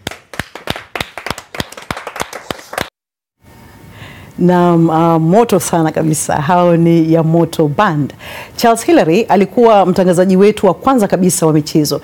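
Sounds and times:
hands clapping: 0.0s - 2.9s.

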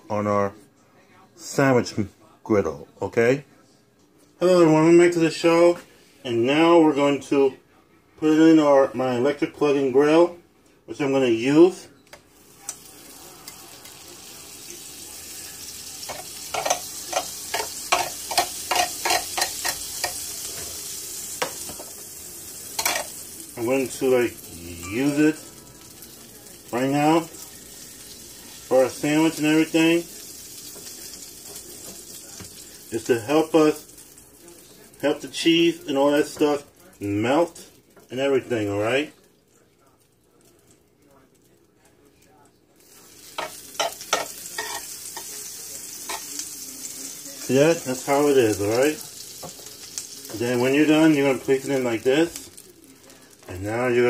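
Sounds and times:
sandwich sizzling in contact grill: 8.3s - 54.0s.

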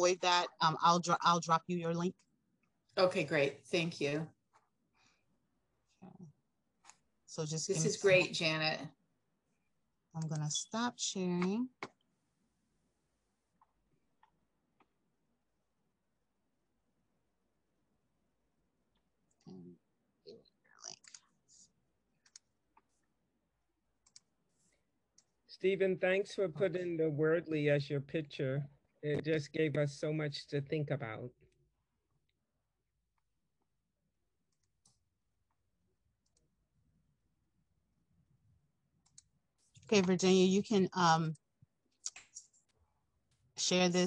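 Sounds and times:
person saying okay: 7.7s - 8.4s
faint clicks: 24.0s - 24.3s.

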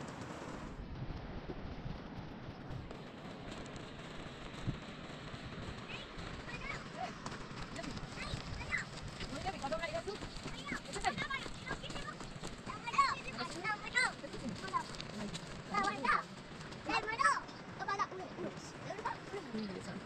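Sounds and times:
steady rushing noise: 0.0s - 20.0s
footsteps on stony ground: 2.5s - 20.0s.

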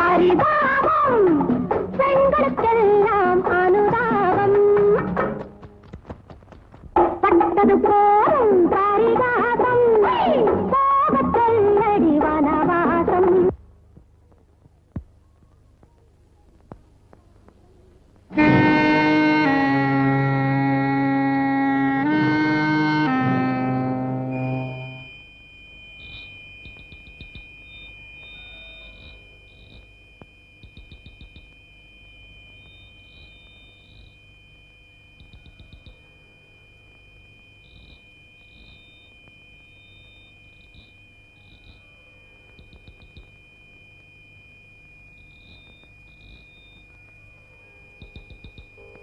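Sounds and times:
crickets chirping: 25.8s - 49.0s
high insect trill: 25.9s - 49.0s.

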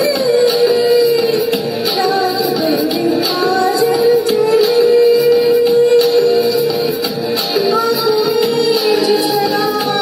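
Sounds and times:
backing music with a beat: 0.0s - 10.0s
woman singing into microphone: 0.0s - 10.0s.

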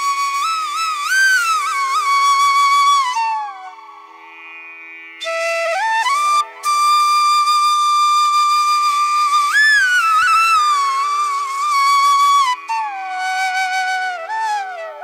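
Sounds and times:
flute music: 0.0s - 4.2s, 5.2s - 15.0s.

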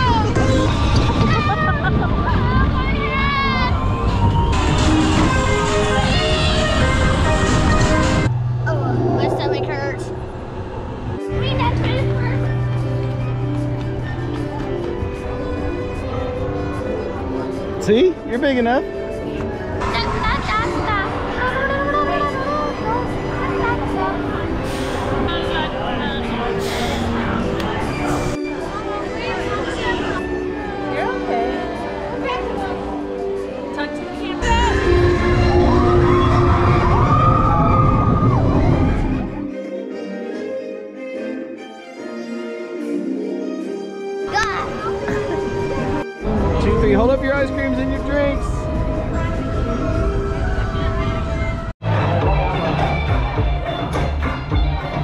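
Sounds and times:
ride car rumbling: 0.0s - 31.4s, 44.6s - 53.8s
wavering voice: 8.6s - 11.0s.

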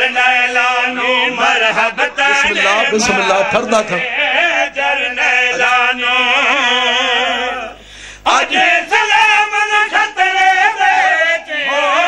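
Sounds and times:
man chanting a melodic phrase: 2.2s - 4.1s.

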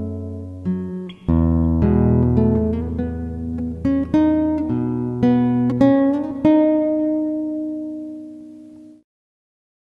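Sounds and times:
acoustic guitar chord: 0.0s - 9.0s.

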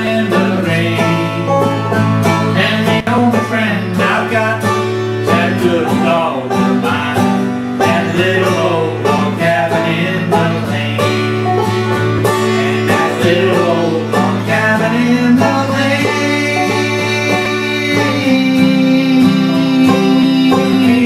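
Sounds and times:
acoustic guitar: 0.0s - 21.0s
banjo: 0.0s - 21.0s.

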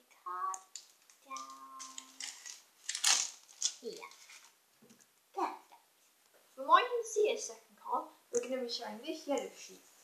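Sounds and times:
card rustling: 0.5s - 5.1s.

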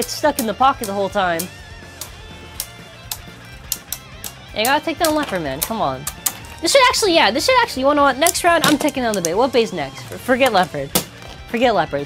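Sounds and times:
spinning tops clashing: 0.0s - 7.1s
background music: 0.0s - 12.0s.

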